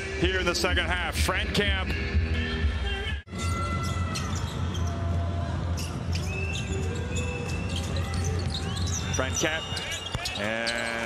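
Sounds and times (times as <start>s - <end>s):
arena music: 0.0s - 4.4s
arena crowd: 4.0s - 11.0s.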